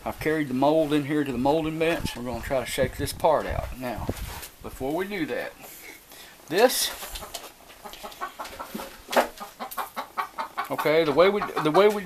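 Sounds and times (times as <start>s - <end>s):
chickens clucking: 4.9s - 12.0s.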